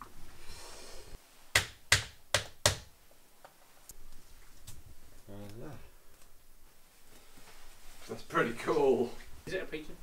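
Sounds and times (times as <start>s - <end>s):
sharp knocks on wood: 1.6s - 2.9s.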